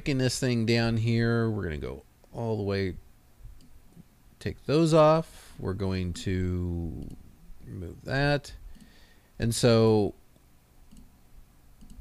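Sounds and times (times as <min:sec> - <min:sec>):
faint computer mouse clicks: 0:03.6 - 0:03.8, 0:07.0 - 0:07.2, 0:10.4 - 0:11.1, 0:11.8 - 0:12.0.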